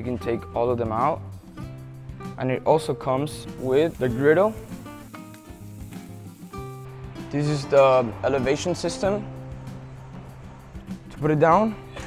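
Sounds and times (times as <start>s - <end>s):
background music: 0.0s - 12.0s
potatoes sizzling on a griddle: 3.6s - 7.7s.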